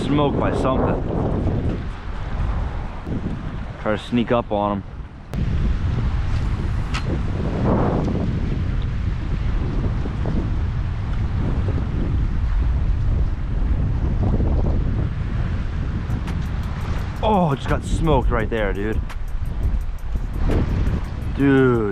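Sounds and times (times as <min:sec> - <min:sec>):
wind buffeting microphone: 0:00.0 - 0:21.9.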